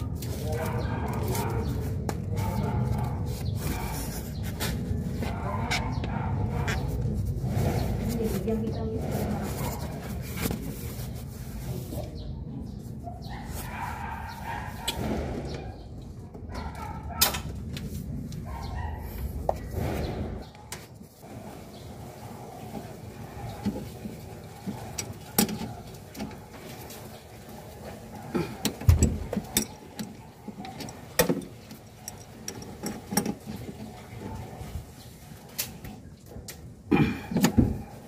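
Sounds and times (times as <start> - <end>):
work noise on air conditioner unit: 0.0 - 38.0.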